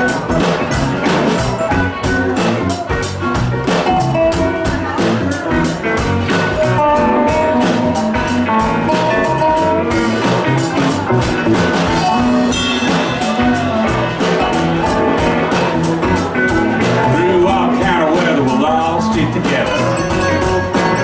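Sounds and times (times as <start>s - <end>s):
country band playing: 0.0s - 21.0s
drum kit beat: 0.0s - 21.0s.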